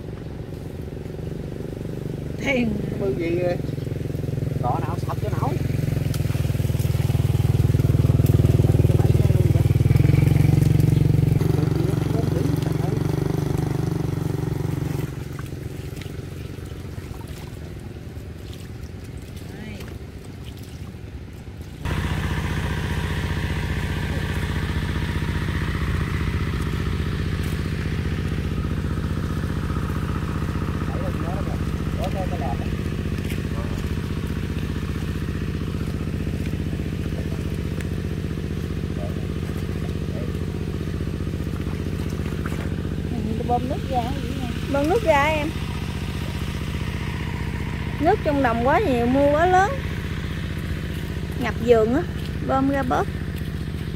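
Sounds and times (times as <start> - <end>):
motorbike engine riding off: 0.0 - 18.2, 21.8 - 53.9
small engine running steadily: 0.0 - 53.9.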